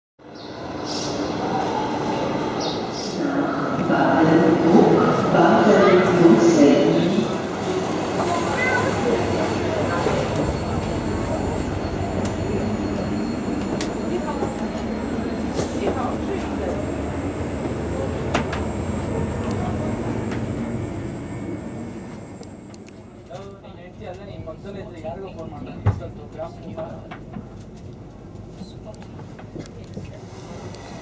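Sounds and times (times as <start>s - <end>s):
indistinct passengers' voices: 0.2s - 31.0s
train interior noise: 0.2s - 31.0s.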